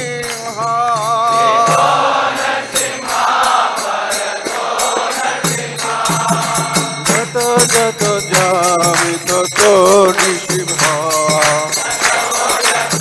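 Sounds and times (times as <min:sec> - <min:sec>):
hand cymbals striking: 0:00.0 - 0:13.0
lead voice singing: 0:00.0 - 0:13.0
group of voices singing: 0:01.0 - 0:13.0.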